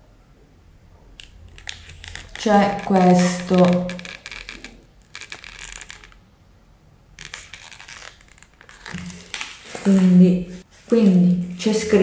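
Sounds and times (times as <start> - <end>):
paper wrapping crinkling: 1.2 - 6.2, 7.2 - 11.6.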